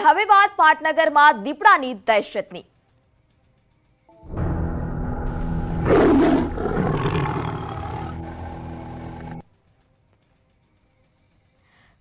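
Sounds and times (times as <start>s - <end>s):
low drone: 4.2s - 9.4s
big cat snarl: 5.8s - 8.4s.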